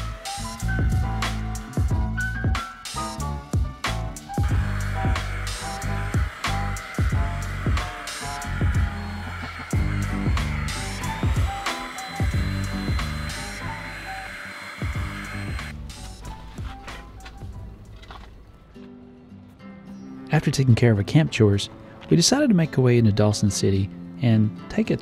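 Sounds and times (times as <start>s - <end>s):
handheld vacuum whining: 0.0s - 17.4s
background music with beat: 0.0s - 18.9s.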